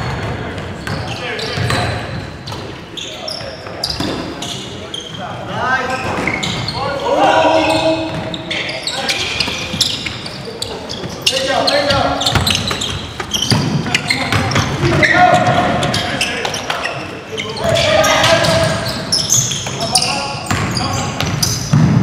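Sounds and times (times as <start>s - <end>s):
players calling out: 2.9s - 21.7s
basketball bouncing on wooden floor: 12.2s - 16.0s, 20.5s - 22.0s.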